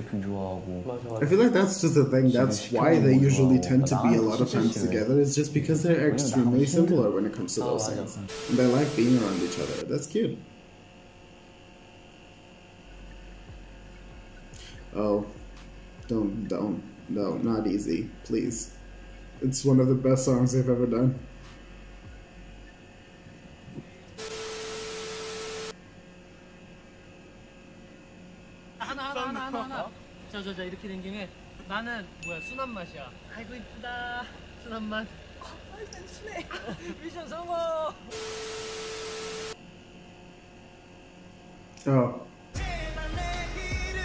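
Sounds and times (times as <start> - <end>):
tv static hiss: 0.0 - 10.4, 12.8 - 25.8, 33.3 - 39.6
low steady hum: 0.0 - 44.0.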